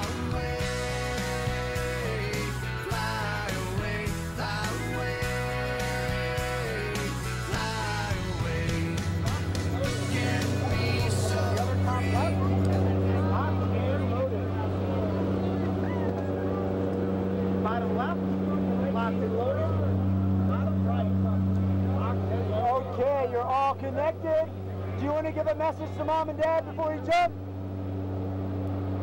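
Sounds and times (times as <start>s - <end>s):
plane engines droning: 0.0s - 29.0s
faint voices talking: 6.6s - 28.1s.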